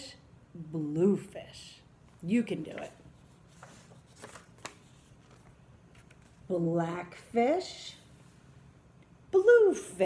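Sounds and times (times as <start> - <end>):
paper rustling: 2.6 - 6.5.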